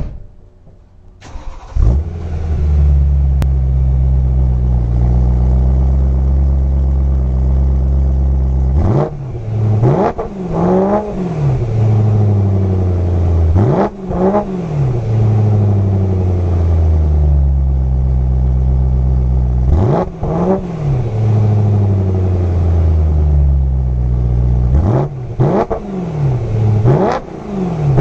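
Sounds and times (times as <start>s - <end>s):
car engine starting: 0.0s - 28.0s
car engine idling: 0.4s - 28.0s
car engine revving: 1.2s - 28.0s.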